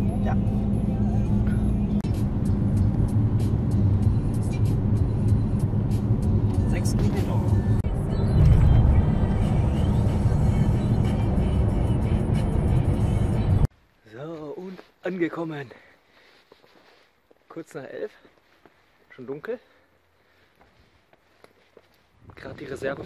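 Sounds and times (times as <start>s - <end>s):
vehicle engine and road noise: 0.0s - 13.7s, 17.9s - 23.0s.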